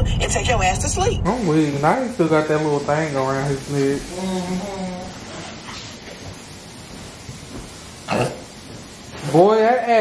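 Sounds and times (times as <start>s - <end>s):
room noise hiss: 0.0s - 10.0s.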